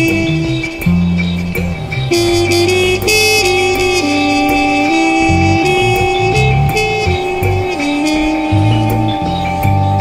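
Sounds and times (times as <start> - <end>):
electric bass line: 0.0 - 10.0
steady electronic tones: 0.0 - 10.0
trumpet playing held notes: 0.0 - 10.0.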